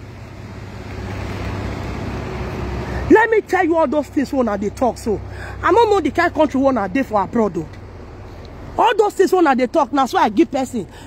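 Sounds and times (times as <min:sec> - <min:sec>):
tyres hissing on wet asphalt: 0:00.0 - 0:03.3
low engine rumble: 0:00.0 - 0:11.0.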